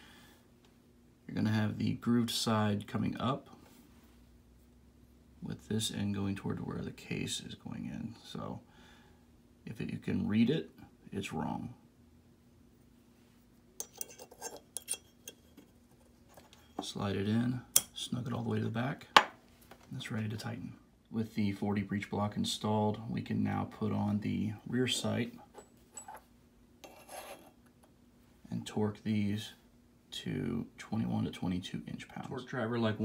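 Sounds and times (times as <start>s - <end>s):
light metal clicks and clinks: 13.8s - 15.4s.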